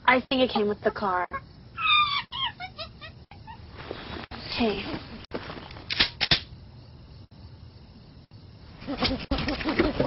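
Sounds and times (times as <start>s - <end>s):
chimpanzee calling: 1.3s - 3.7s.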